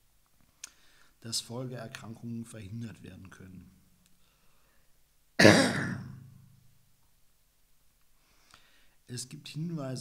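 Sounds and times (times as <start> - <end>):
man coughing: 5.4 - 6.2.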